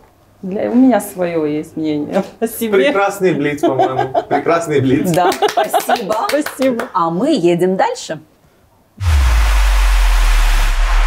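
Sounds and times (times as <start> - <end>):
deep bass rumble: 9.0 - 11.0
loud whoosh: 9.0 - 11.0.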